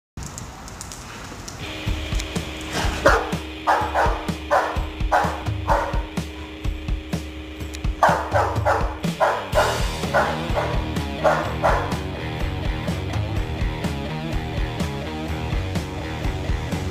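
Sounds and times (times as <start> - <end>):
background music with steady beat: 1.6 - 16.9
dog barking: 3.0 - 6.4, 8.0 - 12.1.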